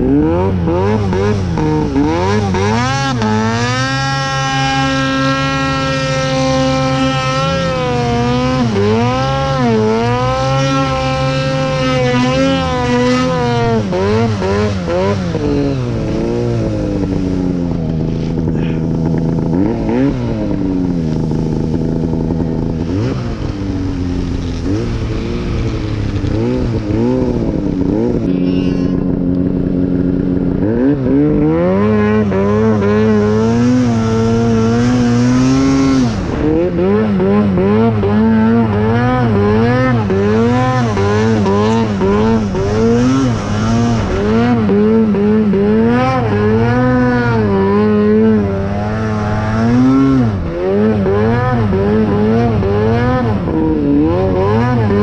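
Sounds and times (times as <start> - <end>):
snowmobile engine revving: 0.0 - 55.0.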